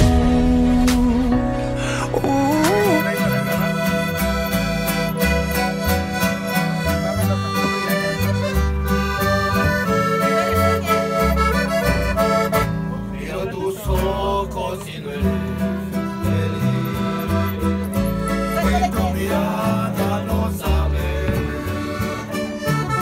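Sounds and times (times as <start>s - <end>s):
guitar bass line: 0.0s - 23.0s
accordion playing: 1.9s - 13.2s, 15.6s - 20.1s, 20.8s - 23.0s.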